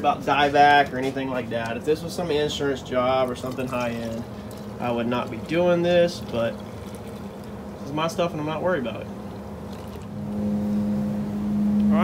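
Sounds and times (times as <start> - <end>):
ventilation fan hum: 0.0 - 12.0.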